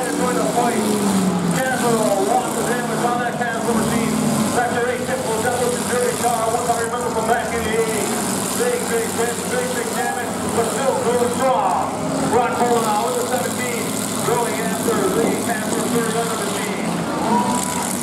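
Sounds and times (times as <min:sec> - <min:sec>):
car engines running: 0:00.0 - 0:18.0
crowd babble: 0:00.0 - 0:18.0.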